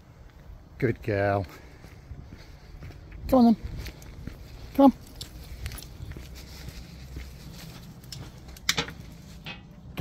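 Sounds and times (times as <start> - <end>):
faint footsteps: 0.0 - 10.0
person speaking command: 3.3 - 3.6, 4.8 - 5.0.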